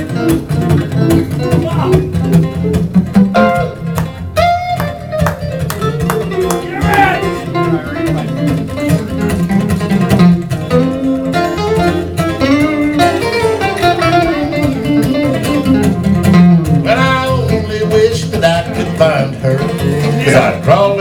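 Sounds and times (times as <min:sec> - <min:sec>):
lead guitar bending notes: 0:00.0 - 0:21.0
rhythm guitar: 0:00.0 - 0:21.0.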